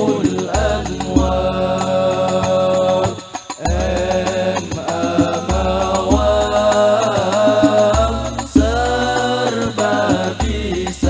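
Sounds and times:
men singing in unison: 0:00.0 - 0:11.0.

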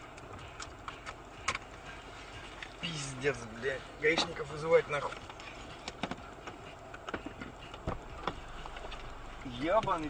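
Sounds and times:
low steady car hum: 0:00.0 - 0:10.0.

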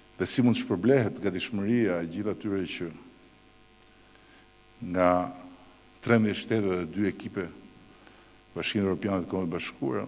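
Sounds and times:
electrical mains hum: 0:00.0 - 0:10.0
man speaking: 0:00.2 - 0:03.0, 0:04.8 - 0:07.6, 0:08.6 - 0:10.0.

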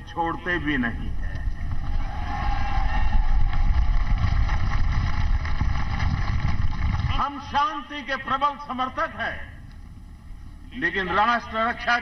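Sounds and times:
wind noise on microphone: 0:00.9 - 0:07.8
crowd applauding and cheering: 0:01.6 - 0:07.3.

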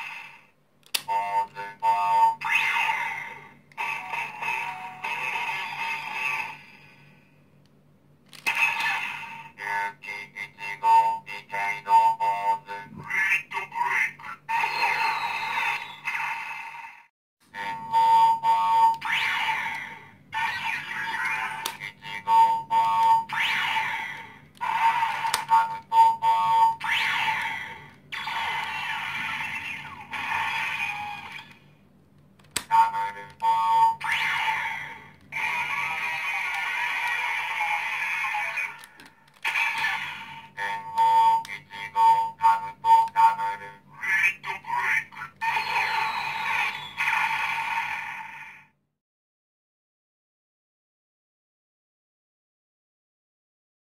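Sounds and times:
toy belt electronic sound effects: 0:00.0 - 0:06.8, 0:08.3 - 0:16.8, 0:17.6 - 0:31.7, 0:32.6 - 0:48.7
toy switches pressed: 0:32.4 - 0:33.5.

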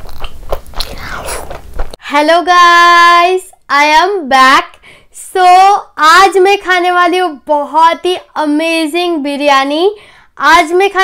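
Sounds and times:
close-miked chewing: 0:00.0 - 0:01.9.

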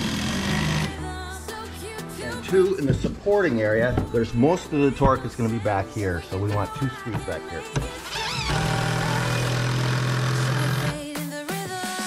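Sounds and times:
cordless drill driving screw: 0:00.0 - 0:00.9, 0:07.8 - 0:11.0
background music: 0:00.0 - 0:12.0.

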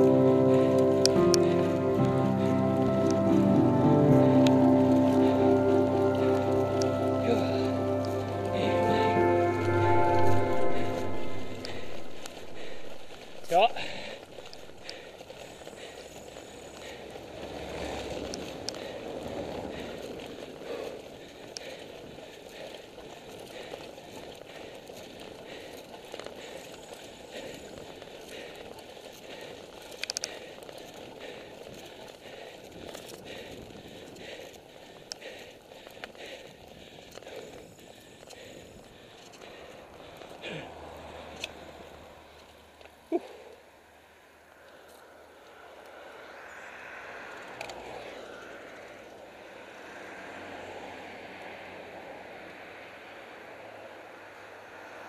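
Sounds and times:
bicycle rattling over cobblestones: 0:00.0 - 0:55.0
bicycle rolling hiss: 0:00.0 - 0:55.0.

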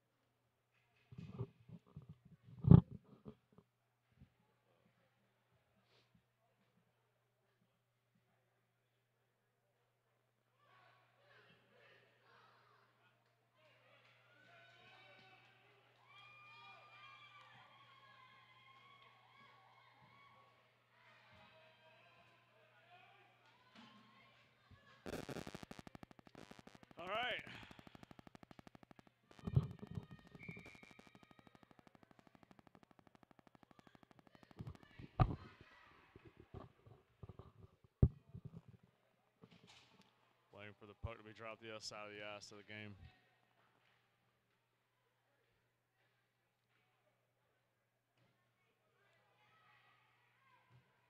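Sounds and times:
steady low hum: 0:25.1 - 0:35.5.

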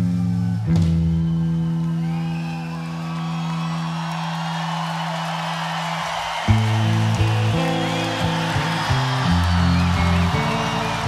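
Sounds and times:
electric bass and guitar rock jam: 0:00.0 - 0:01.9, 0:06.5 - 0:11.0
arena crowd cheering: 0:00.0 - 0:11.0.

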